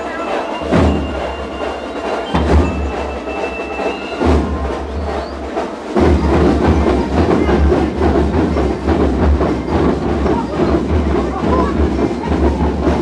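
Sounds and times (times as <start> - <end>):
rattling snare drums: 0.0 - 13.0.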